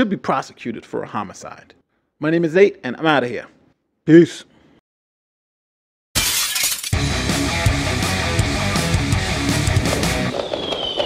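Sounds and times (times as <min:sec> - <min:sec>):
heavy guitar music: 0:07.0 - 0:10.3.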